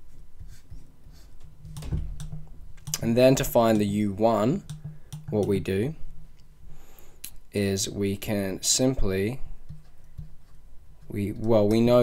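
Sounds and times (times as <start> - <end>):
computer clicks and taps: 1.7 - 3.1, 4.6 - 5.6.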